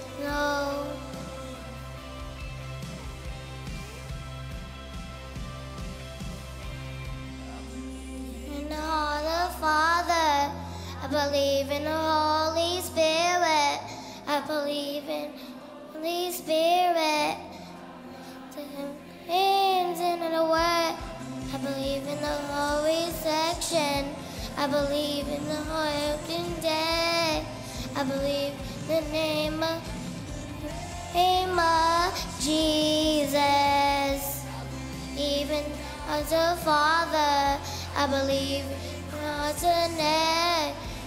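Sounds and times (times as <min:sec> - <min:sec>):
backing music: 0:00.0 - 0:41.0
girls singing into a microphone: 0:08.4 - 0:41.0.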